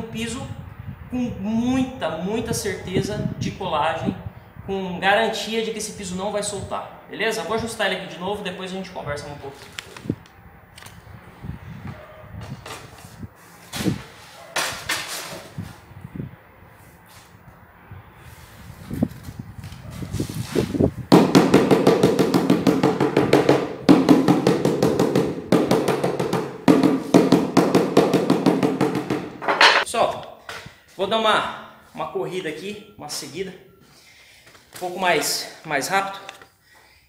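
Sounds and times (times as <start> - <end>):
floor tile scraping and knocking: 21.2 - 29.9.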